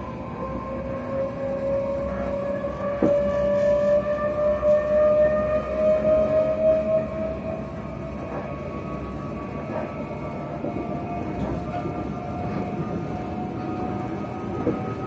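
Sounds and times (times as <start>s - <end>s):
train motor whine: 0.0s - 10.0s
train wheels rumbling on track: 0.0s - 15.0s.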